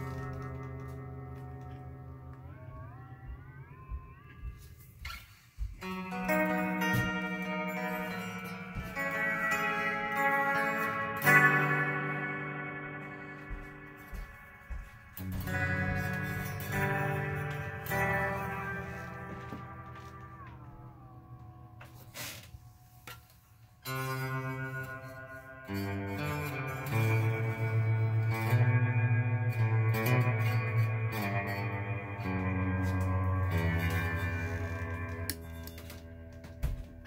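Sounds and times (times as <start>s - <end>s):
electric guitar with reverb: 0.0s - 37.0s.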